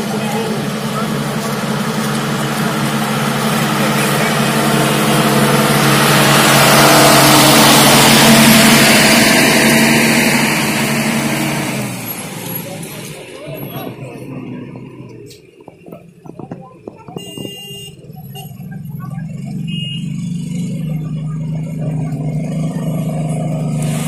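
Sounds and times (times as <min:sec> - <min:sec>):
bus engine hum: 0:00.0 - 0:24.0.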